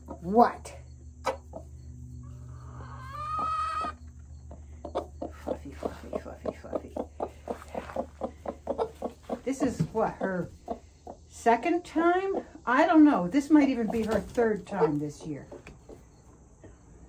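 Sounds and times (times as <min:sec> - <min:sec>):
steady low hum: 0:00.0 - 0:17.0
hen clucking: 0:01.2 - 0:16.8
hen squawking call: 0:02.7 - 0:04.0.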